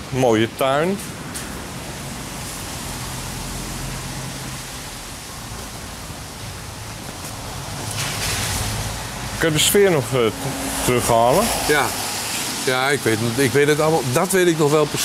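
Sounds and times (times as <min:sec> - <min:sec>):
rushing street noise: 0:00.0 - 0:15.0.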